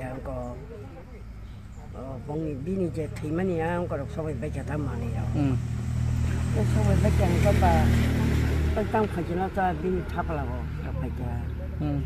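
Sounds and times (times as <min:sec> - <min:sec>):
vehicle engine passing: 0:00.0 - 0:12.0.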